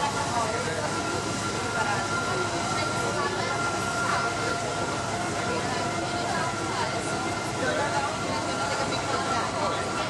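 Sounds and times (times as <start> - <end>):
electric locomotive whine: 0.0 - 10.0.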